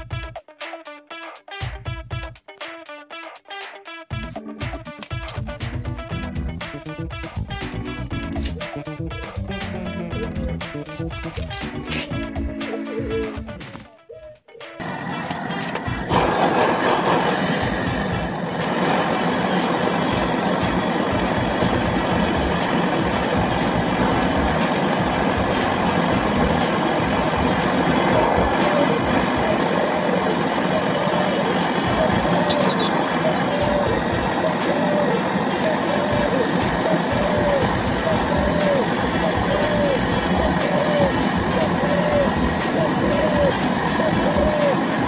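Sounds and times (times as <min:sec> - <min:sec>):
gas torch hissing: 0:14.8 - 0:45.0.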